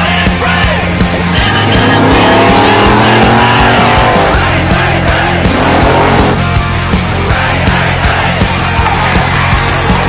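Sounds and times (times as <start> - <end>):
background music: 0.0 - 10.0
truck engine revving hard: 0.6 - 7.1.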